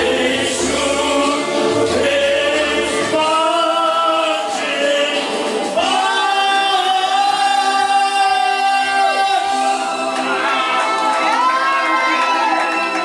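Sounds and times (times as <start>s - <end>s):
two men singing karaoke: 0.0s - 10.5s
karaoke backing track: 0.0s - 13.0s.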